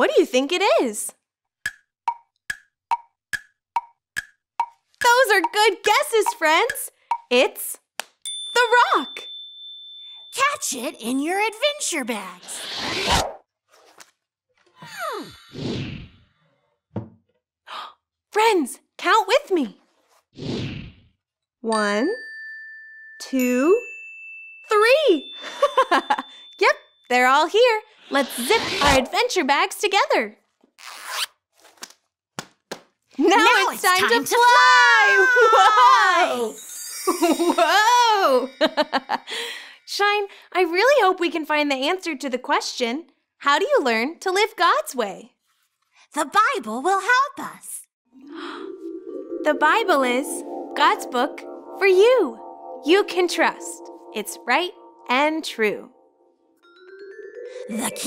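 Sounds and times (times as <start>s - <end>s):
bag zipper being pulled: 12.4s - 14.0s, 30.8s - 31.4s.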